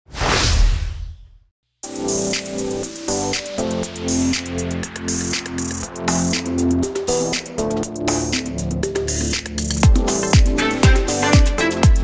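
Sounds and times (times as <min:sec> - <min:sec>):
whoosh with deep boom: 0:00.1 - 0:01.5
electronic music: 0:01.8 - 0:12.0.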